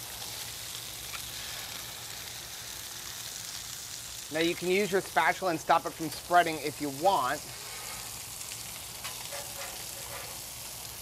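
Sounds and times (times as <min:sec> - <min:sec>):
food sizzling on a griddle: 0:00.0 - 0:11.0.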